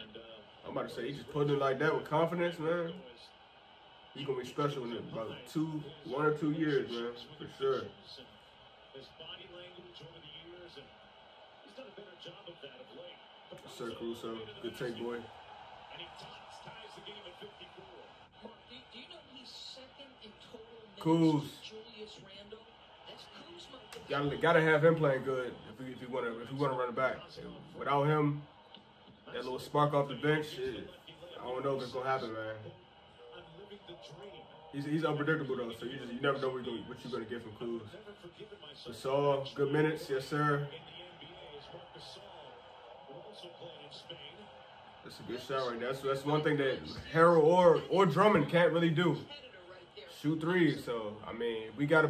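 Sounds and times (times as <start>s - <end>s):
faint male speech: 0.0s - 19.1s, 22.9s - 52.0s.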